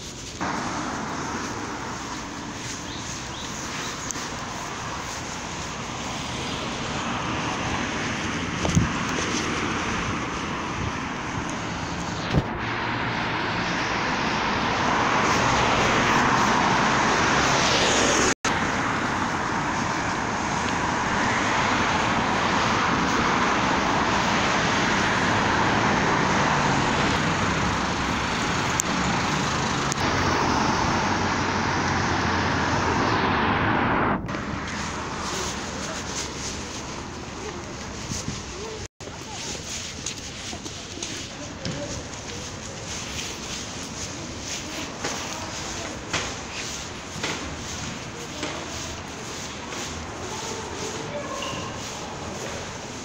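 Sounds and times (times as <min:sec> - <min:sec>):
cars driving along street: 0:00.0 - 0:53.0.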